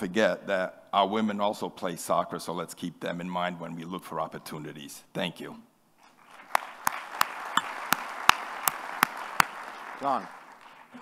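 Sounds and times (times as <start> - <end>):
audience applauding: 6.2 - 11.0
sharp close hand claps: 6.4 - 11.0.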